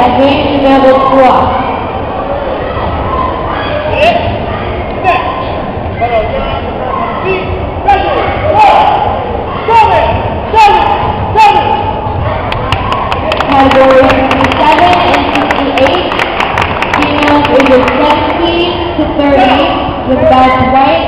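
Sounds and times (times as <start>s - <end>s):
voices echoing in a hall: 0.0s - 21.0s.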